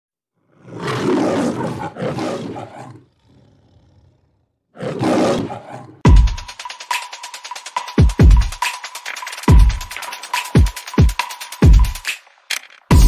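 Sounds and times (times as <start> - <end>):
animal roaring: 0.4 - 6.0.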